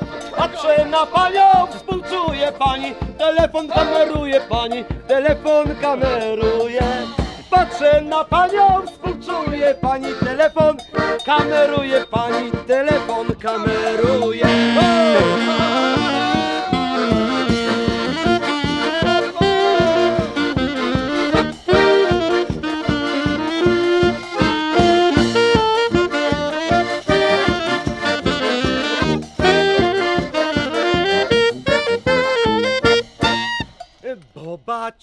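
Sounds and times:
saxophone melody: 0:00.0 - 0:03.0, 0:03.6 - 0:04.9, 0:05.6 - 0:34.1
tuba bass: 0:00.0 - 0:33.7
accordion: 0:00.0 - 0:34.2
drum fast steady beat: 0:00.0 - 0:34.5.

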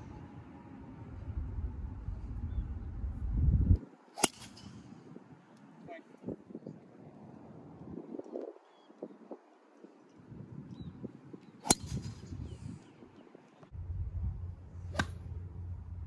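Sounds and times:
wind rumble on microphone: 0:00.0 - 0:03.9, 0:04.6 - 0:09.5, 0:10.1 - 0:16.0
golf club striking ball: 0:14.9 - 0:15.3.

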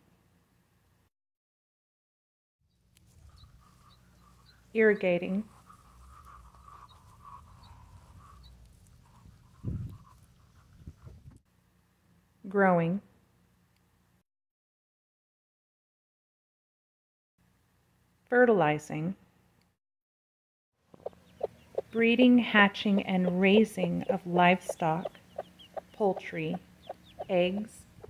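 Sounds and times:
chickens clucking: 0:03.2 - 0:04.6, 0:05.5 - 0:11.3, 0:20.9 - 0:28.0.

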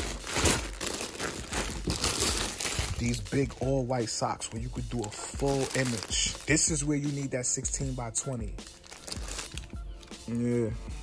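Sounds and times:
plastic bags crinkling: 0:00.0 - 0:10.2.

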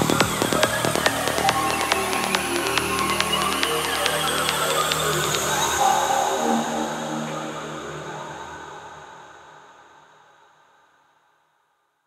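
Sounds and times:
kick drum: 0:00.0 - 0:05.4
percussion ticks: 0:00.0 - 0:05.8.

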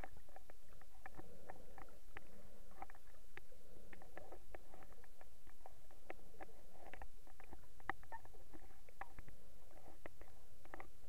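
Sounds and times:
low rumble of moving water: 0:00.0 - 0:11.0
underwater clicks and crackles: 0:00.0 - 0:11.0.

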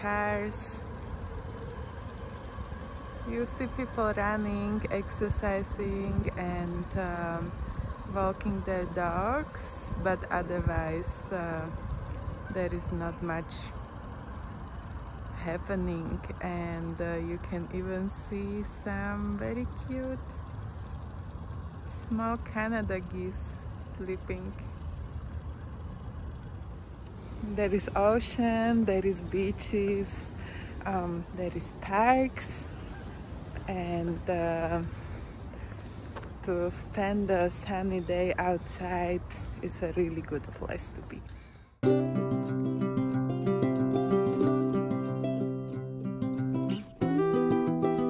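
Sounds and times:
distant city traffic rumble: 0:00.0 - 0:48.0.

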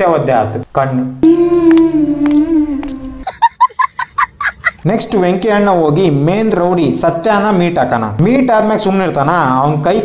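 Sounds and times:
speech: 0:00.0 - 0:01.2, 0:04.8 - 0:10.0
held humming tone: 0:01.2 - 0:03.3
short pulsed calls: 0:01.2 - 0:03.3.

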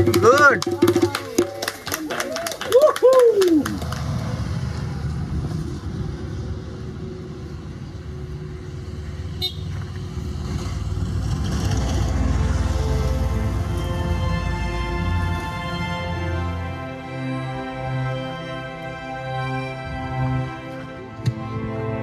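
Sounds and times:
road traffic rumble: 0:00.0 - 0:22.0
horn toot: 0:09.3 - 0:09.8.

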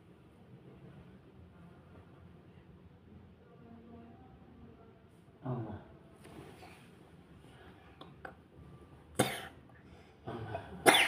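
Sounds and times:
person coughing: 0:09.2 - 0:09.6, 0:10.6 - 0:11.0.

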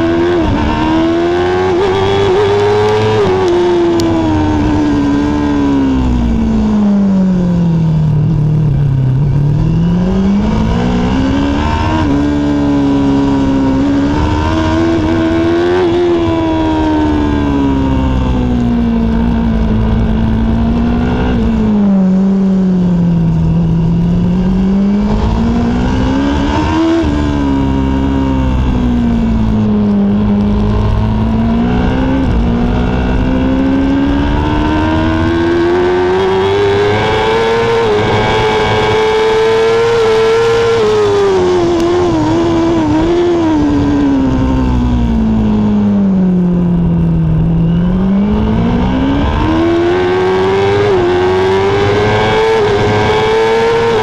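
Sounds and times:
racing motorcycle engine: 0:00.0 - 0:54.0
wind rush: 0:08.1 - 0:54.0.

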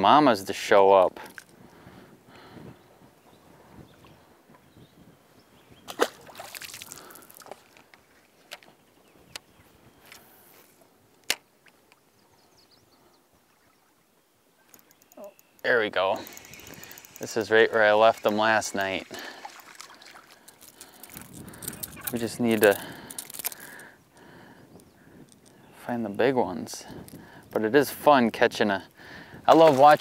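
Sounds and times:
fishing tackle clicks: 0:14.6 - 0:25.6.

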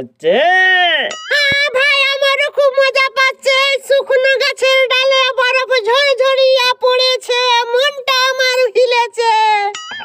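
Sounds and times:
high-pitched voice singing: 0:01.3 - 0:04.2.

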